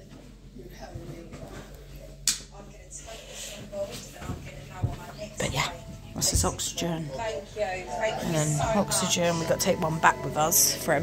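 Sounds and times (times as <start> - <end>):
faint indistinct voices: 0.0 - 11.0
low steady hum: 0.0 - 11.0.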